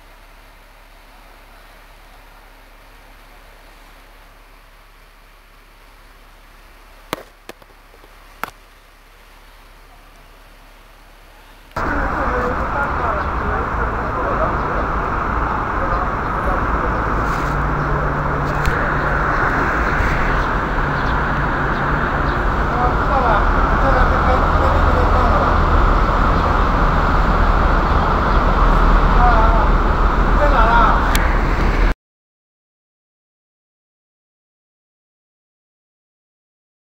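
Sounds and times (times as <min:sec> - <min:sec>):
street traffic: 0:00.0 - 0:32.0
faint voices: 0:11.3 - 0:31.6.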